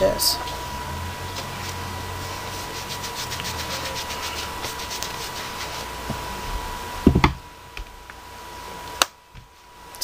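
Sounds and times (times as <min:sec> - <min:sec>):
faint high hum: 0:00.0 - 0:10.0
hands rubbing and rustling: 0:01.3 - 0:05.9.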